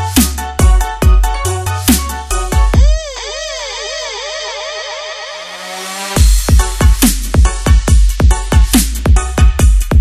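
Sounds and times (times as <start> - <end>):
held low bass note: 2.3 - 4.8
synth tone swooping like a siren: 2.8 - 6.2.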